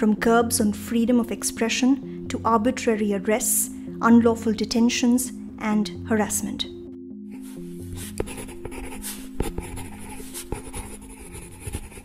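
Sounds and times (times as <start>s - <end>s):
pen scratching on paper: 7.3s - 12.0s.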